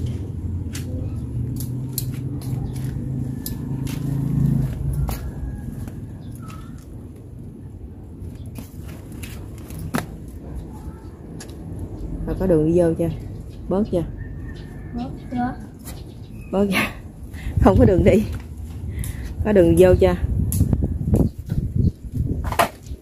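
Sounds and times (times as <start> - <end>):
scissors cutting leafy greens: 0.7 - 4.1.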